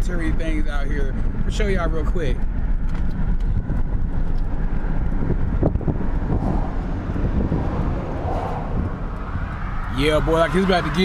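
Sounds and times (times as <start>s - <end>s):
car road and engine rumble: 0.0s - 11.0s
wind noise on microphone: 2.5s - 10.2s.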